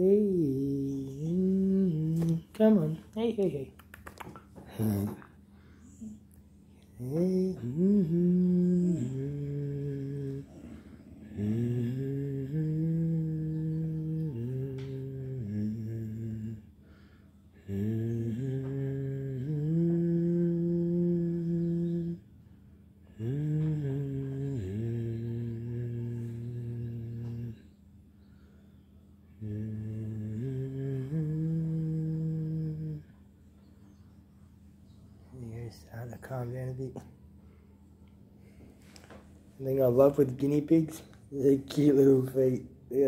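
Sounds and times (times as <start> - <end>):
man humming low notes: 0.0 - 3.0, 4.6 - 16.8, 17.5 - 22.4, 23.0 - 34.2, 34.9 - 37.3, 39.5 - 43.0.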